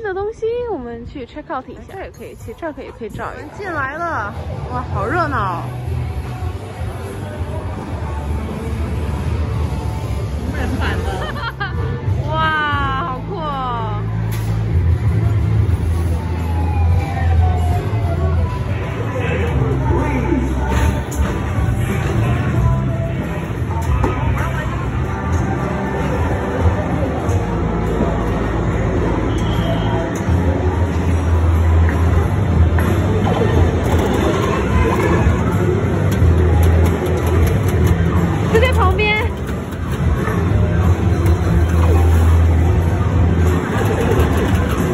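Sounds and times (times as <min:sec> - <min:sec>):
background chatter: 0:00.0 - 0:44.9
low rumble of arcade machines: 0:03.4 - 0:44.9.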